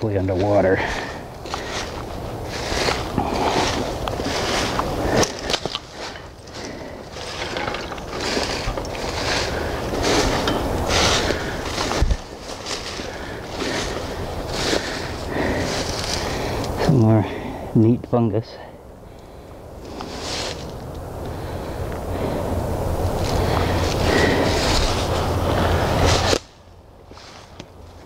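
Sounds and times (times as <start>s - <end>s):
brushing through undergrowth: 0.0s - 16.9s, 19.8s - 20.9s, 22.2s - 28.0s
footsteps crunching dry leaves: 0.0s - 16.9s, 19.8s - 20.9s, 22.9s - 28.0s.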